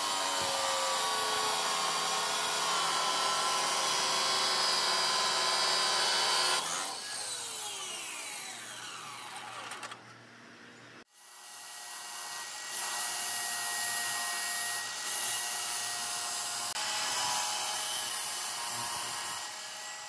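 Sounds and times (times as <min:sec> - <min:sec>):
chop saw cutting steel rod: 0:00.0 - 0:09.9, 0:11.4 - 0:20.0
saw motor whining: 0:00.0 - 0:10.0.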